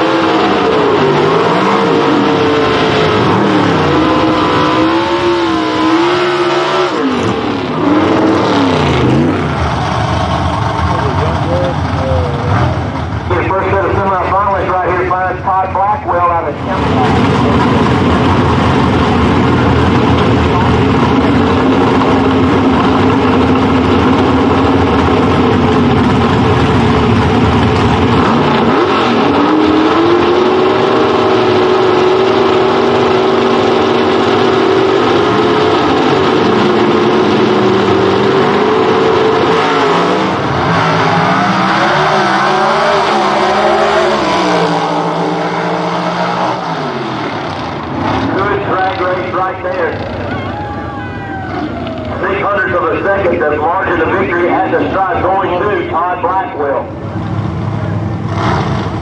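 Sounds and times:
drag car engines revving: 0.0 - 59.0.

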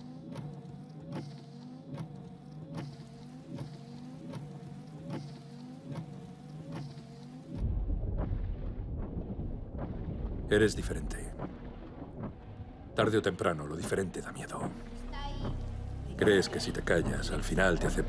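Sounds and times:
steady hum: 0.0 - 18.0
deep low rumble: 7.6 - 18.0.

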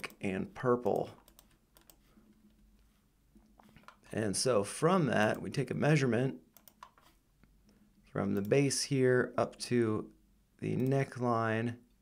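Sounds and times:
low hum of room tone: 0.0 - 12.0
computer mouse and keyboard clicks: 0.8 - 2.6, 3.4 - 4.1, 6.6 - 7.2.

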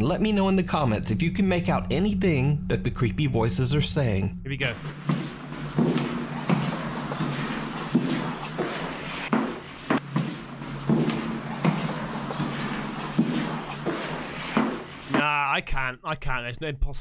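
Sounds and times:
steady low hum: 0.0 - 15.2
footsteps: 4.7 - 15.3.

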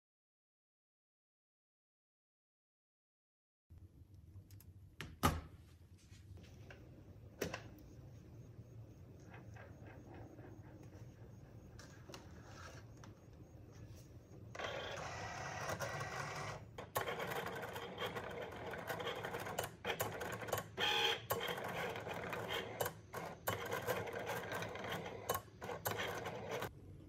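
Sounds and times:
cutting machine motors whirring: 14.5 - 26.7.

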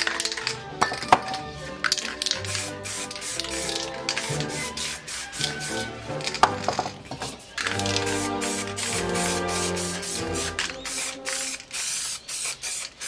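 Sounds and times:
background music: 0.0 - 11.8
aerosol spray can hissing: 1.6 - 13.0.

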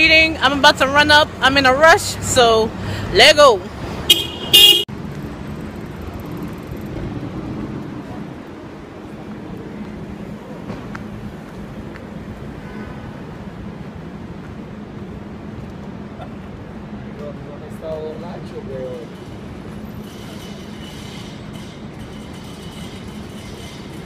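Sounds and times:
street traffic noise: 0.0 - 24.0.

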